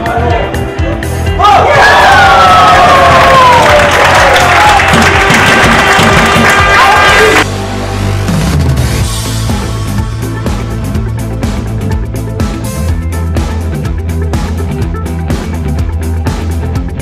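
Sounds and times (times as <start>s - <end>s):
background music: 0.0s - 17.0s
crowd cheering and shouting: 1.3s - 7.5s.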